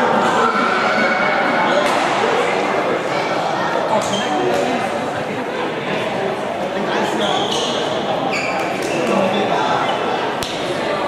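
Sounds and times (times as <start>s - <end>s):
spectators talking in echoing hall: 0.0s - 11.0s.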